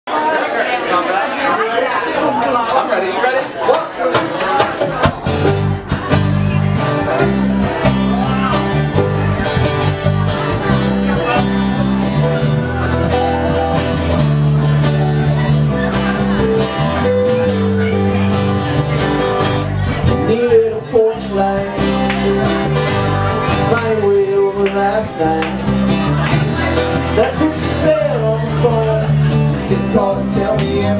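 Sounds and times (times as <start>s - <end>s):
strummed acoustic guitars: 3.6s - 30.9s
electric bass notes: 5.0s - 30.9s.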